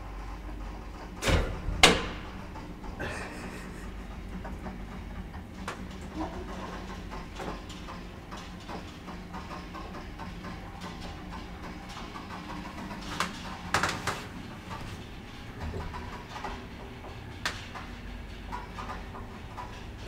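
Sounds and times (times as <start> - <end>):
elevator hoist machinery hum: 0.0 - 20.0.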